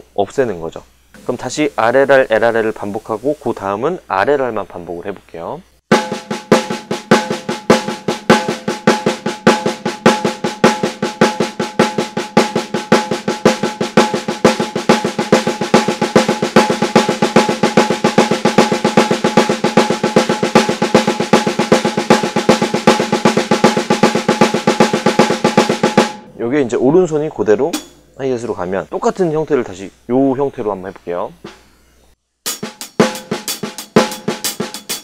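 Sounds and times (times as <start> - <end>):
snare drum rapid strokes: 5.9 - 26.3, 32.5 - 35.0.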